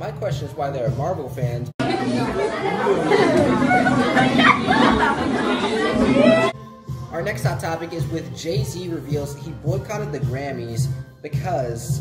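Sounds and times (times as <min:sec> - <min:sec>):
people talking over one another: 0:01.8 - 0:06.6.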